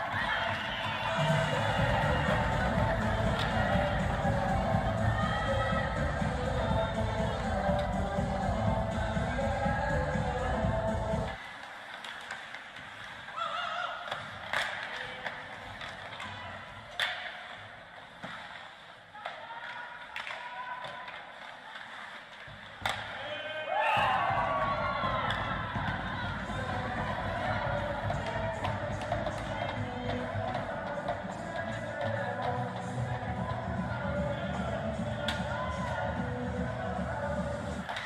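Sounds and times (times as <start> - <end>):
arena music: 0.0 - 11.4, 24.0 - 38.0
voices: 0.0 - 11.4, 19.0 - 38.0
puck and stick hits: 0.1 - 4.9, 11.3 - 34.0, 35.1 - 36.2, 37.8 - 38.0.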